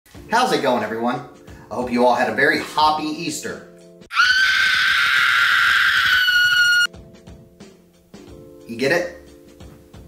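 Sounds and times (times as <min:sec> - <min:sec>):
soft background music: 0:00.1 - 0:04.1, 0:06.9 - 0:10.0
high-pitched scream: 0:04.1 - 0:06.9.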